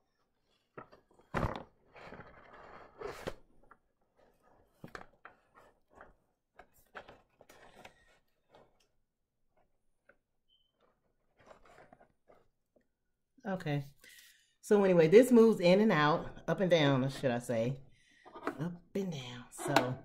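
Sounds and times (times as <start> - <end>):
rustling scrape: 11.2 - 12.5.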